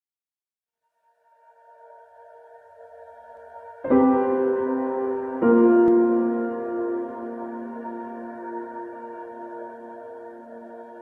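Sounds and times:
soft sustained tones: 1.0 - 11.0.

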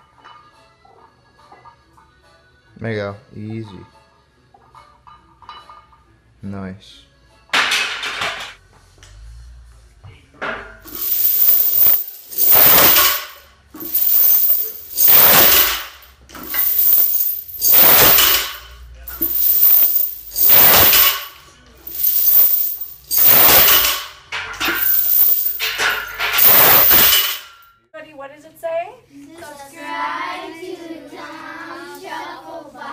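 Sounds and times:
steel chains rattling and clinking: 10.8 - 27.7.

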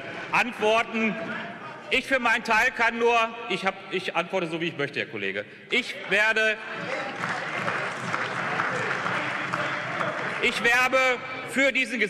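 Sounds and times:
crowd applauding: 6.8 - 11.2.

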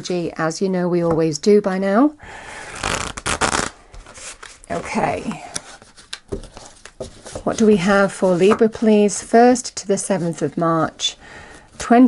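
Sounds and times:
cards being shuffled: 2.7 - 7.5.

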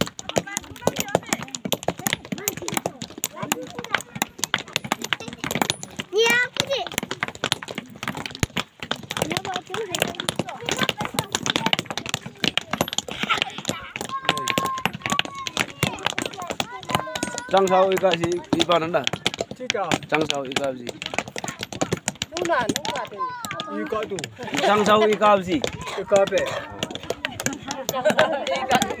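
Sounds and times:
hammers clinking on stone: 0.1 - 29.0.

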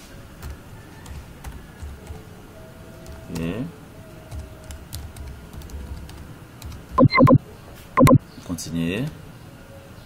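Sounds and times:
keyboard typing: 0.4 - 2.3, 3.0 - 3.6, 4.3 - 7.4, 8.0 - 8.2.

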